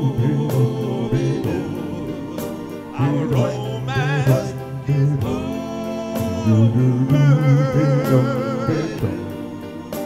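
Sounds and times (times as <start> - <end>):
lead voice with vibrato: 0.0 - 10.0
vocal group singing in harmony: 0.0 - 10.0
low bass voice: 3.0 - 4.5.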